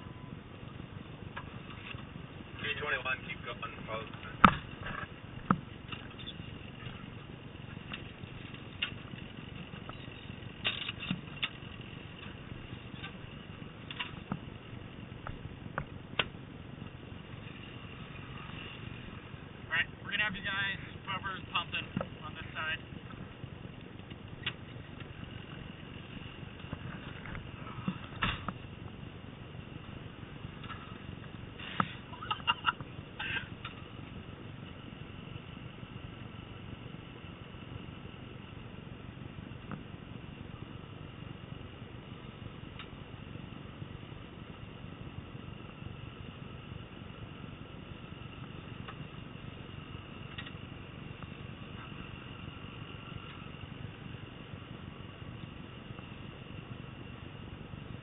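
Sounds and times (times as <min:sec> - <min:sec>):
fire engine droning with whine: 0:00.0 - 0:58.0.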